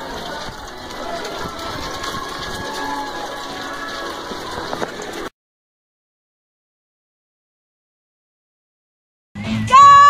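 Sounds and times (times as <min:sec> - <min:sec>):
crowd of runners rushing: 0:00.0 - 0:05.3.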